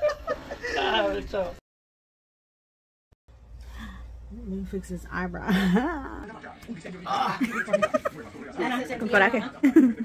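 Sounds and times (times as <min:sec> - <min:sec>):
voices talking and laughing: 0:00.0 - 0:01.5, 0:05.3 - 0:10.0.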